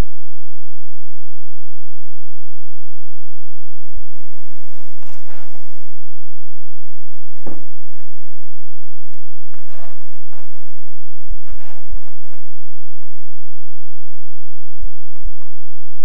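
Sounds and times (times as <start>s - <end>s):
loud steady low hum: 0.0s - 16.0s
soft low thumps: 0.0s - 16.0s
rustling: 4.1s - 13.2s.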